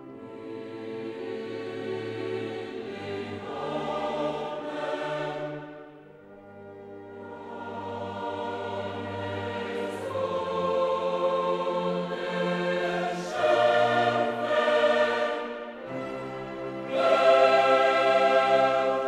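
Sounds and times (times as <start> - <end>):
choral music: 0.0 - 19.0.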